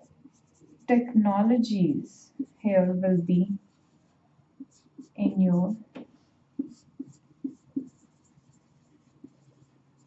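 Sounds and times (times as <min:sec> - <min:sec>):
marker pen writing on whiteboard: 0:00.0 - 0:01.2, 0:02.2 - 0:02.8, 0:03.6 - 0:10.0.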